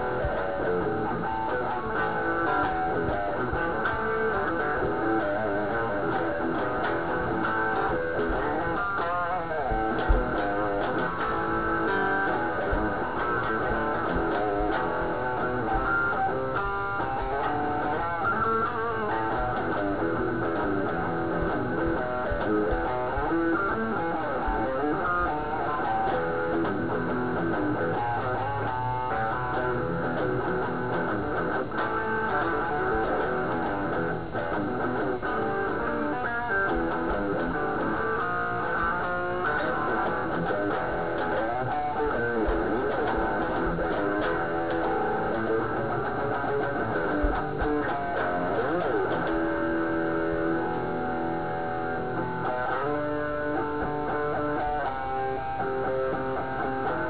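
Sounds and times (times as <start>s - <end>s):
electric guitar playing: 0.0s - 57.0s.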